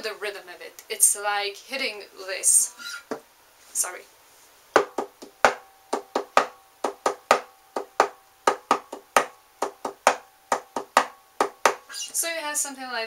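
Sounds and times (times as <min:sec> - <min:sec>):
acoustic guitar percussive hits: 0:04.8 - 0:11.9.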